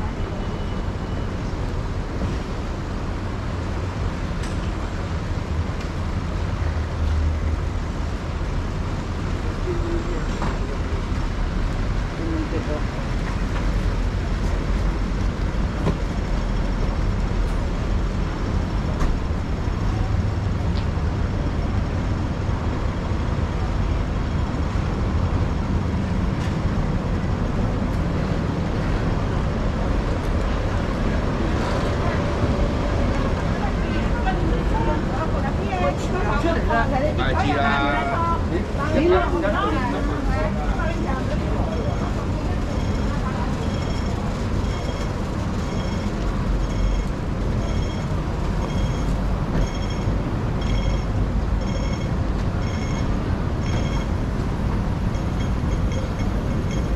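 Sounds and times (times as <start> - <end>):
road traffic rumble: 0.0 - 56.9
voices of passers-by: 0.0 - 56.9.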